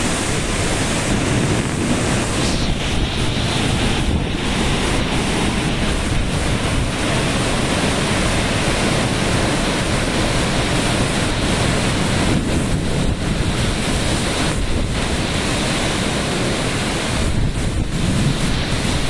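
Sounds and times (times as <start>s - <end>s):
heavy rain: 0.0s - 19.0s
strong wind thrashing trees: 0.0s - 19.0s
wind buffeting microphone: 0.0s - 19.0s.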